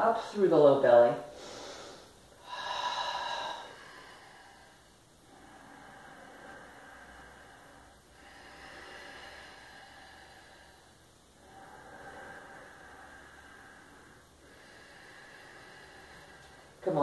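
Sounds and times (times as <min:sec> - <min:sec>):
faint slow breathing: 0:01.3 - 0:17.0.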